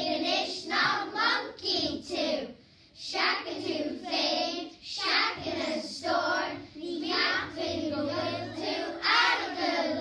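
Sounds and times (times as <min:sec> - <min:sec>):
children singing in chorus: 0:03.0 - 0:10.0.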